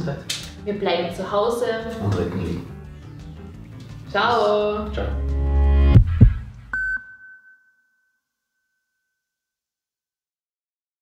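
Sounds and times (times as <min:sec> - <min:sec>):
deep thumps: 0:05.0 - 0:06.7.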